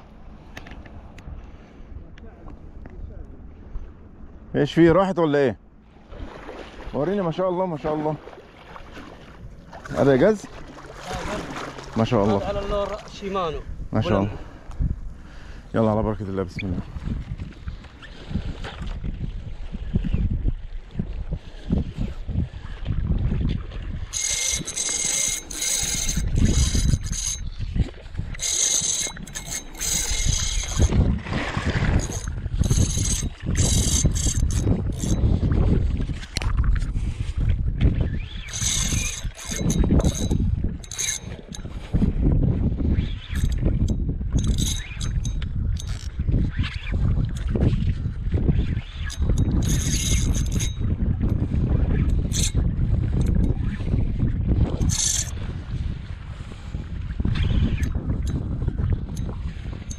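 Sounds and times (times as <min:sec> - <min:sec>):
wind buffeting microphone: 0:00.0 - 0:59.9
water lapping: 0:05.7 - 0:59.9
spinning reel whirring: 0:24.1 - 0:31.1, 0:31.7 - 0:35.4, 0:38.1 - 0:41.7, 0:42.9 - 0:47.6, 0:48.5 - 0:54.0, 0:54.6 - 0:55.4.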